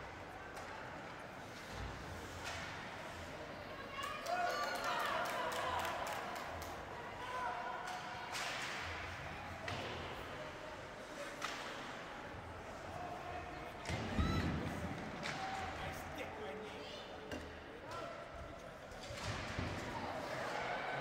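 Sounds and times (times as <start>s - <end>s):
crowd chatter: 0.0s - 21.0s
hockey sticks and puck clacking: 7.8s - 10.4s, 11.0s - 12.1s, 18.9s - 21.0s.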